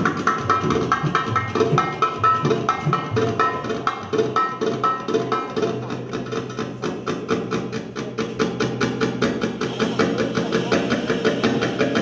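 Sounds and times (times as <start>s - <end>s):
rapid hand-drum strokes: 0.0s - 12.0s
sustained accompanying instruments: 6.4s - 12.0s.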